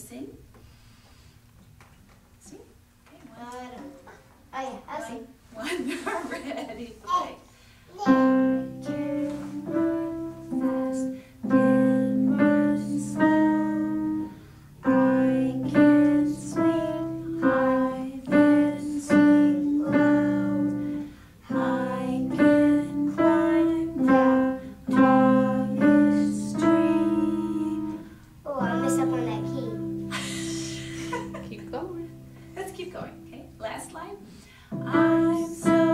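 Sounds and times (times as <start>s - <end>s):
voices singing: 8.0s - 14.2s, 14.8s - 29.2s, 34.8s - 35.9s.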